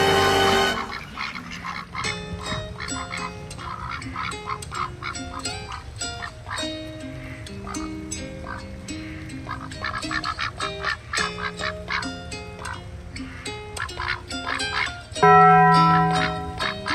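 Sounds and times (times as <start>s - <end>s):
music with long held notes: 0.0s - 1.0s, 15.2s - 16.9s
ducks quacking: 0.0s - 16.9s.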